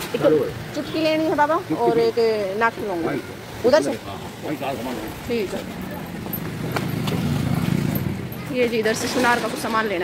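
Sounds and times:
motorcycle engine rumbling: 4.2 - 10.0.

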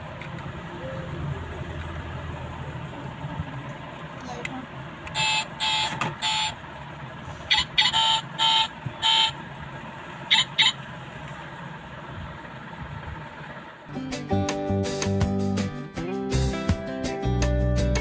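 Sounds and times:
toy car horn-like beeps: 5.1 - 6.6, 7.5 - 9.4, 10.3 - 10.8.

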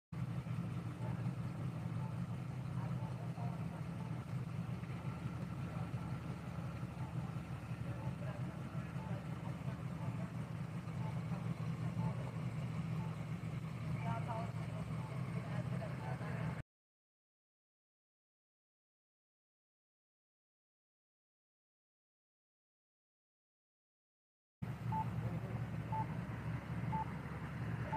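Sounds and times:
faint distant voices: 0.2 - 16.6, 24.9 - 27.9
vehicle engine idling: 0.2 - 16.6, 24.6 - 27.9.

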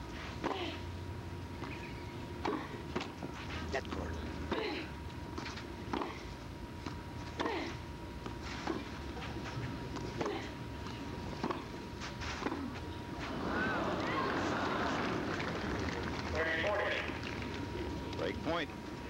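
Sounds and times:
crowd reacting: 13.3 - 17.2.

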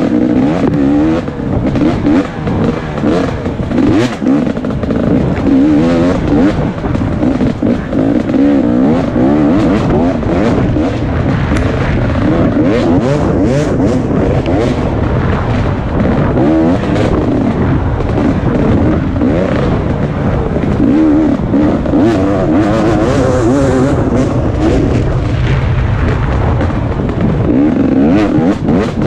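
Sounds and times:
dirt bike engine revving: 0.0 - 29.0
wind on microphone: 0.0 - 29.0.

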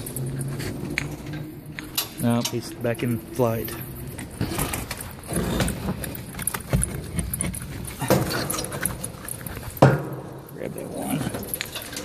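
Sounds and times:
rustling and clicking from handling: 0.0 - 12.0.

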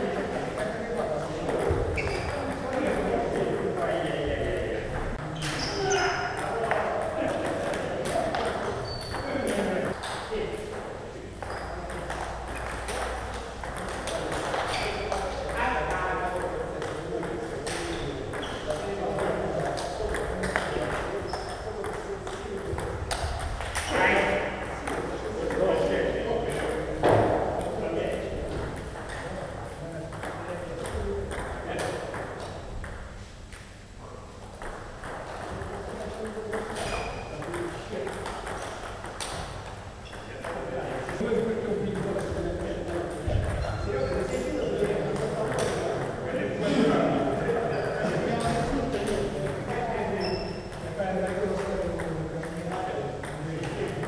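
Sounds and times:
voices in hall: 0.0 - 54.0.

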